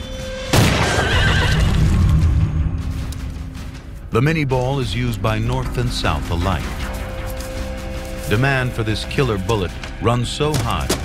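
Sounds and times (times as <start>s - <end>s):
low background music: 0.0s - 11.0s
horse whinnying: 0.8s - 1.9s.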